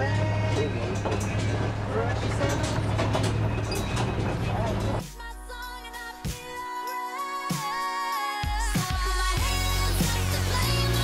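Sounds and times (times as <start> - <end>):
people talking: 0.0 - 3.0, 4.1 - 5.0
truck engine running: 0.0 - 5.1.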